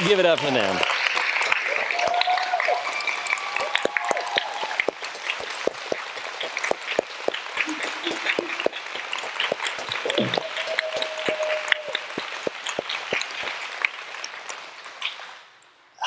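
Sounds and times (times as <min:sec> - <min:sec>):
people cheering: 0:00.0 - 0:14.4
people clapping: 0:00.0 - 0:15.6.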